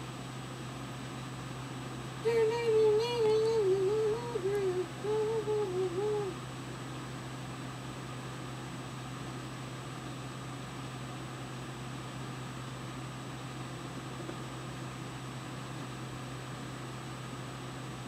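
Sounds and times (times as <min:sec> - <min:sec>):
low hum: 0:00.0 - 0:18.0
faint high steady tone: 0:02.2 - 0:06.4.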